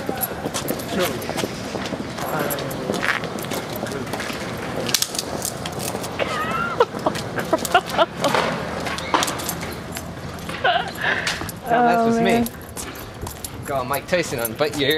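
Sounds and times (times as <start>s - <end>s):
street noise: 0.0s - 14.9s.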